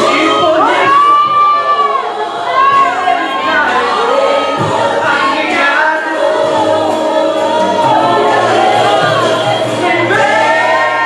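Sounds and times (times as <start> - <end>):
man singing into microphone: 0.0 - 1.9.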